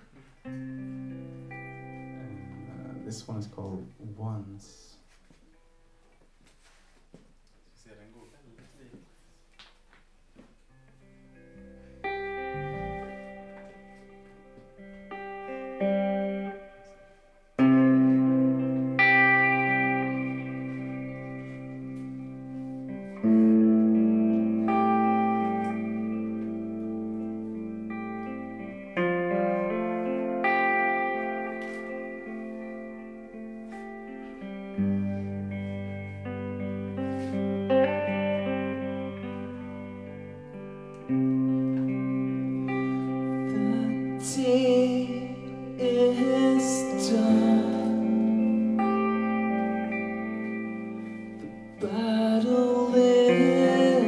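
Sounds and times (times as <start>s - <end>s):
electric bass notes: 0.0s - 4.4s, 10.6s - 54.0s
electric guitar chords: 0.0s - 6.7s, 9.5s - 54.0s.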